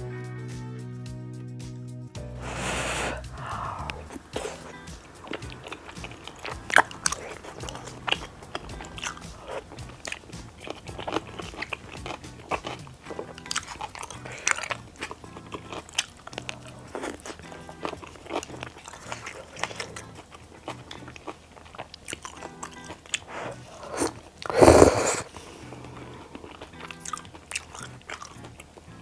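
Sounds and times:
background music: 0:00.0 - 0:29.0
biting and chewing: 0:02.4 - 0:29.0
crunchy wet mouth clicks: 0:02.6 - 0:28.9.

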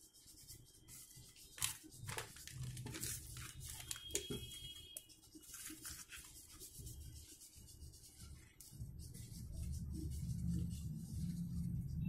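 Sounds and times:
paper rustling and crinkling: 0:00.9 - 0:07.4.

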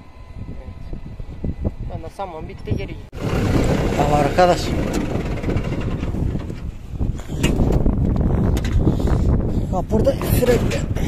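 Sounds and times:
tractor diesel engine straining: 0:03.2 - 0:07.9.

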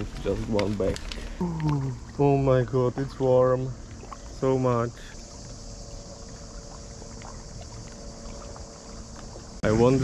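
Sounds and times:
steady high-pitched hiss: 0:00.0 - 0:10.0.

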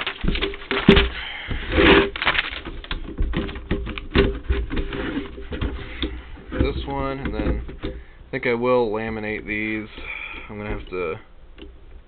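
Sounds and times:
paper rustling and sliding: 0:00.0 - 0:03.8.

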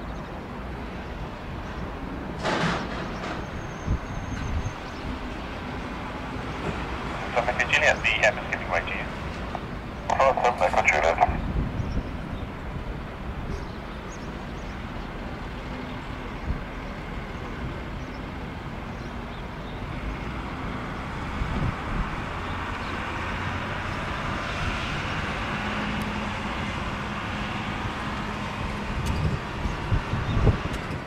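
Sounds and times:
jet engine whine: 0:06.6 - 0:11.5.

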